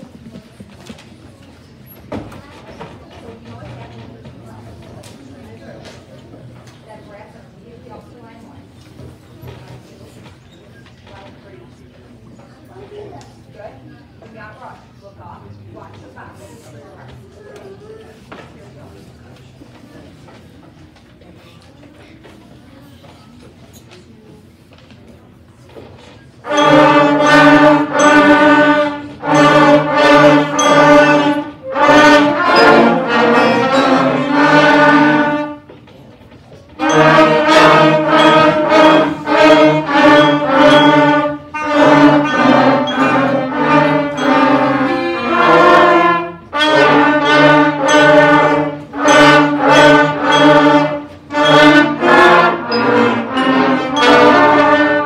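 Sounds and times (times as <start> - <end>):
concert band playing: 26.4 - 35.6, 36.8 - 55.0.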